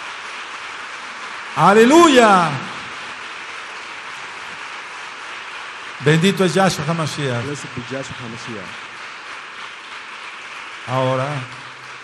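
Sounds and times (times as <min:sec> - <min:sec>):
congregation applauding: 0:00.0 - 0:12.0.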